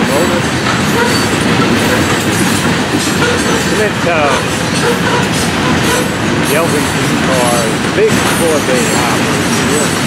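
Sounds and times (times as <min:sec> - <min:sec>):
freight train wheels rumbling: 0:00.0 - 0:10.0.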